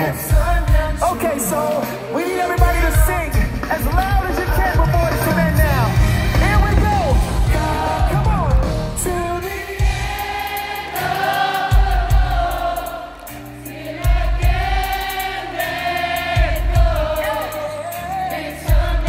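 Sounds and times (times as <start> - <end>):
live band backing: 0.0 - 19.0
heavy bass notes: 2.6 - 10.2
audience singing along: 4.8 - 19.0
choir of voices singing: 5.4 - 19.0.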